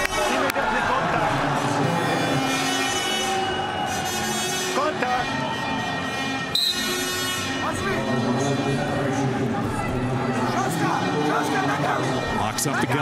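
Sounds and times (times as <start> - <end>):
arena crowd noise: 0.0 - 13.0
music over loudspeakers: 0.0 - 13.0
referee's whistle blast: 6.4 - 7.6.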